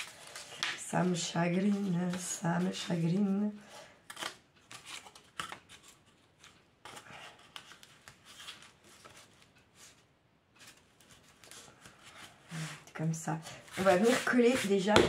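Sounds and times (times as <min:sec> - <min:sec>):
cardboard rustling and scraping: 0:10.6 - 0:15.0.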